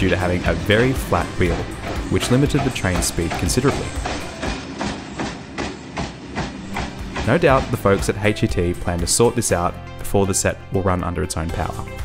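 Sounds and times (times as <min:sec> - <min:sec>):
train wheel knocking on rails: 0:00.0 - 0:09.2.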